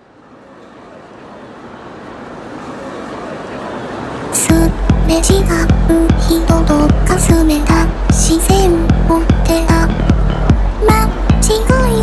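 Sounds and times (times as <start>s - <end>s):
traffic: 0.0s - 12.0s
urban hubbub: 0.0s - 12.0s.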